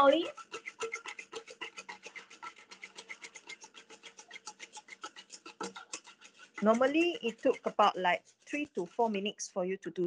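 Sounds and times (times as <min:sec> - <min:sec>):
cream being whisked by hand: 0:00.0 - 0:10.0.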